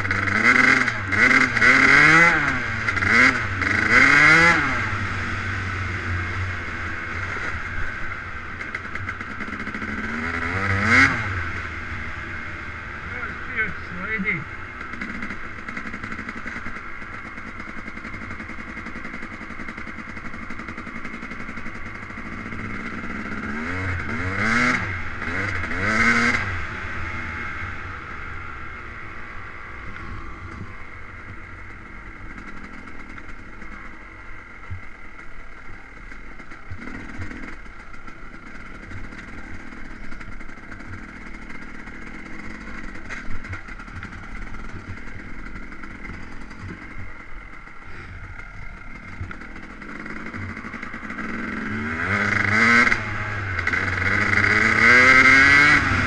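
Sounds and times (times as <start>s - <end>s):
two-stroke dirt bike engine revving: 0.0s - 56.0s.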